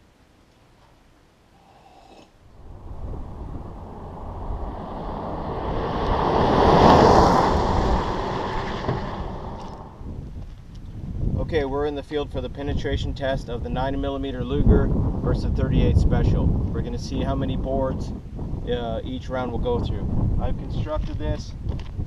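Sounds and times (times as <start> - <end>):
wind on microphone: 2.4 - 22.0
pickup driving on gravel: 2.6 - 10.6.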